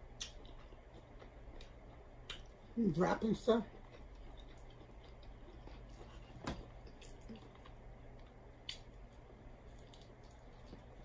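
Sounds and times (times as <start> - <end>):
person chewing: 0.0 - 11.0.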